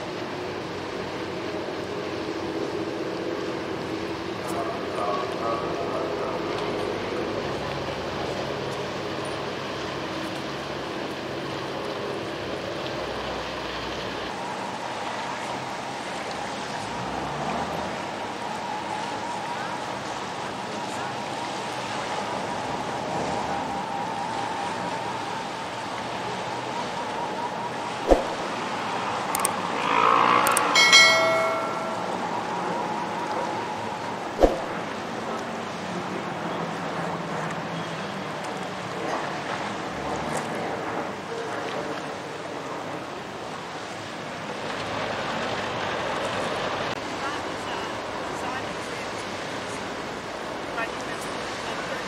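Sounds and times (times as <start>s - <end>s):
boat engines droning: 0.0s - 52.0s
distant traffic: 0.0s - 52.0s
water noise: 0.0s - 52.0s
wind: 0.0s - 52.0s
bright ringing chime: 30.7s - 33.6s.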